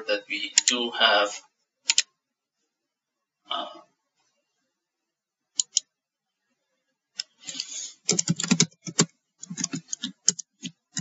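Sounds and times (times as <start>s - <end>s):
computer keyboard typing: 1.9s - 2.1s, 5.6s - 5.8s, 7.4s - 11.0s.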